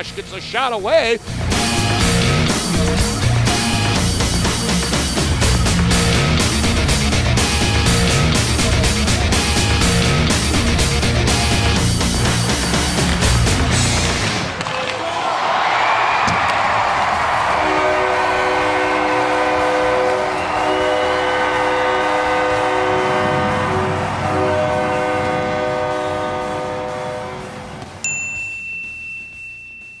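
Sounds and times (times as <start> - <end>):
bright chime ringing: 28.0 - 30.0.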